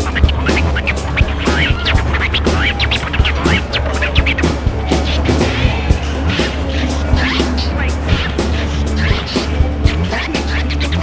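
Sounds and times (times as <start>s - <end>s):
drum hits: 0.0s - 10.1s
heavy bass: 0.0s - 11.0s.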